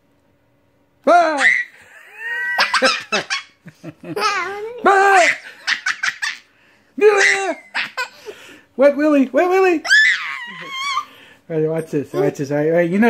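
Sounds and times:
young child laughing: 1.3s - 8.4s, 9.9s - 11.1s.

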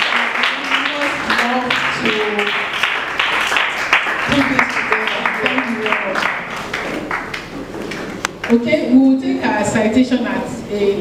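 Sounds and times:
audience applause: 0.0s - 8.2s.

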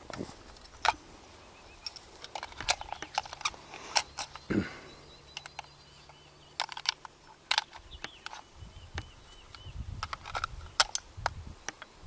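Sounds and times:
rifles and gear being handled: 0.0s - 11.1s
faint high bird chirps: 4.0s - 6.7s, 7.6s - 9.9s
wind rumble on microphone: 8.6s - 11.6s.

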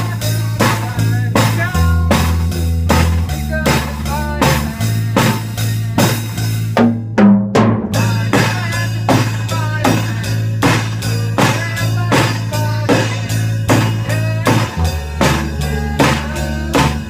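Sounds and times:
drum kit: 0.0s - 17.0s
electric bass: 0.0s - 17.0s.

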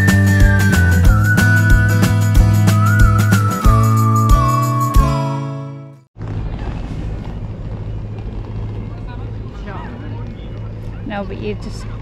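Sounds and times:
music with whistled tune: 0.0s - 5.9s.

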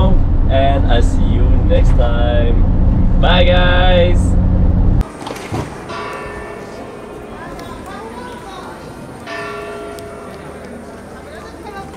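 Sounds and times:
people's voices: 5.1s - 11.9s
church bell ringing: 5.9s - 11.9s.

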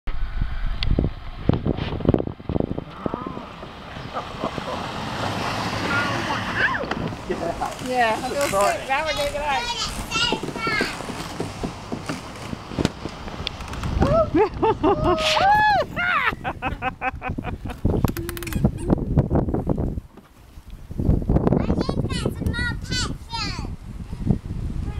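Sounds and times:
wind buffeting microphone: 0.1s - 24.9s
plastic toy wheels rolling on grass: 5.3s - 14.2s.

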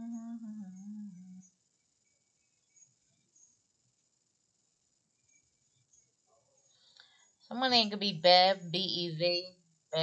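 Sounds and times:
person humming: 0.0s - 1.4s.

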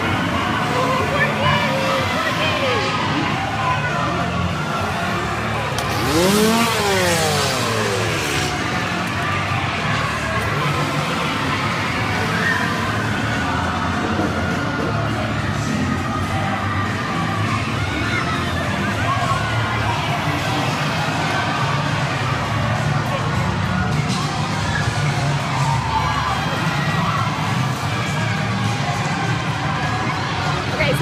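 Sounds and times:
crowd noise: 0.0s - 31.0s.

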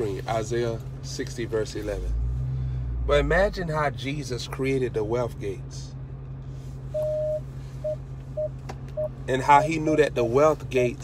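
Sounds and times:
electronic beeps: 7.0s - 9.1s.

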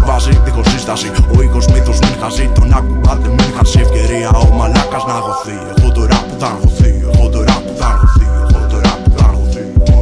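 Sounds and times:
rapping over a beat: 0.0s - 10.0s
drum hits: 1.4s - 5.0s.

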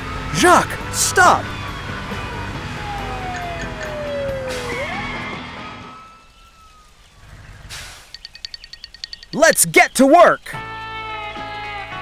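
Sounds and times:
siren sliding down in pitch: 0.2s - 7.0s
low engine rumble: 0.8s - 6.0s.

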